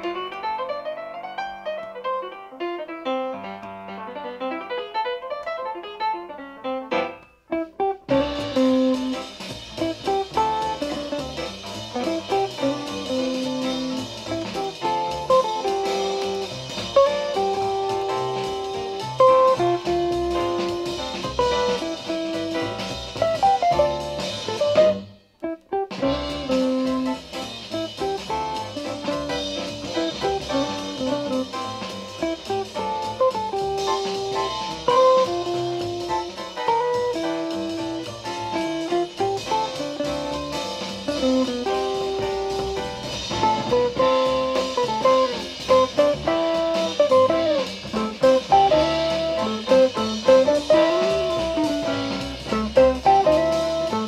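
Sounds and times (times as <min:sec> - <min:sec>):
jazz guitar with bass and drums: 0:00.0 - 0:54.0.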